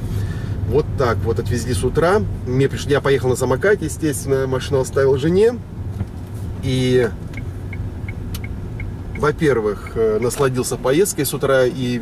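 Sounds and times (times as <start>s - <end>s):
engine and road rumble: 0.0s - 12.0s
turn signal ticking: 5.8s - 12.0s.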